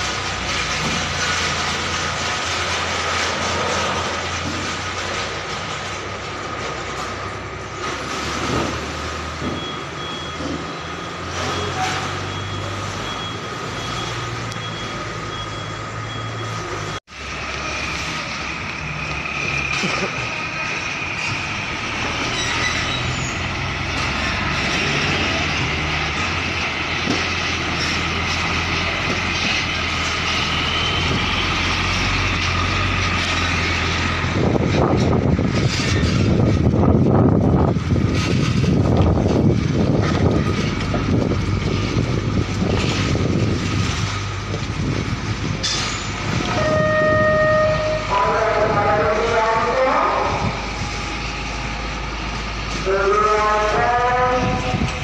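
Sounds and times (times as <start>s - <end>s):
diesel truck engines running: 0.0s - 55.0s.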